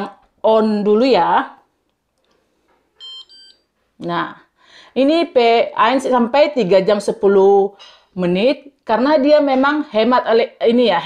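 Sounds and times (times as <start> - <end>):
short electronic beeps: 3.0 - 3.6.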